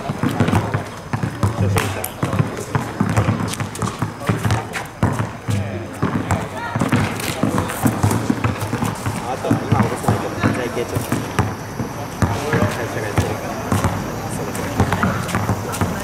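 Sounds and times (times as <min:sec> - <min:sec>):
basketball bouncing on asphalt: 0:00.0 - 0:16.0
people talking: 0:00.0 - 0:16.0.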